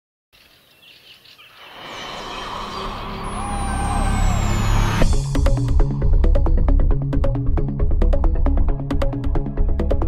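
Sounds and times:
rumble and rush: 1.7 - 6.0
electronic music: 2.0 - 9.3.

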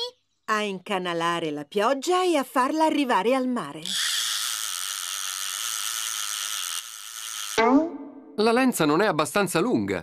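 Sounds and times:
fishing reel whirring: 3.8 - 7.6.

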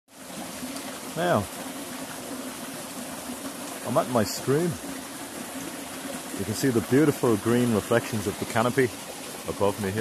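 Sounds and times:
small stream trickling: 0.1 - 10.0.

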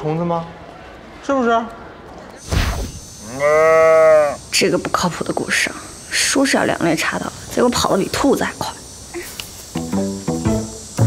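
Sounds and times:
short whoosh: 2.4 - 3.0.

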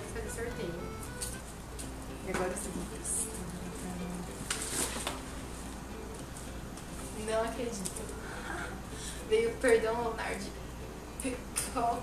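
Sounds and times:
gift wrapping paper rustling: 3.1 - 8.4.

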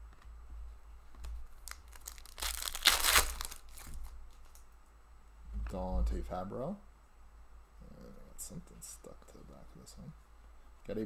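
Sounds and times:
foil wrapper tearing and crinkling: 1.6 - 4.6.

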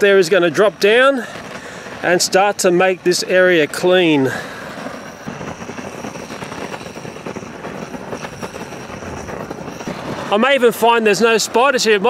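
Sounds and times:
gas burner flame rushing: 0.0 - 12.0.

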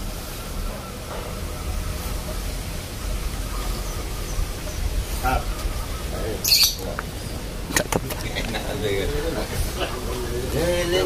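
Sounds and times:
distant voices: 0.0 - 11.0
wind rumble on microphone: 0.0 - 11.0.

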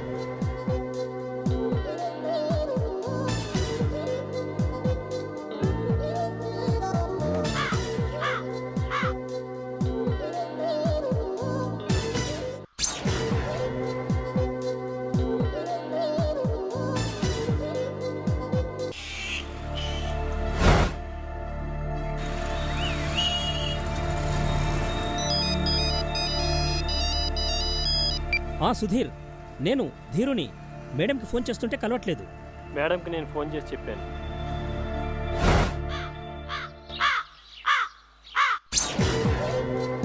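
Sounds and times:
crow cawing: 7.6 - 9.2, 19.0 - 20.1, 35.9 - 38.7
phone ringtone beeping melody: 24.5 - 28.5.

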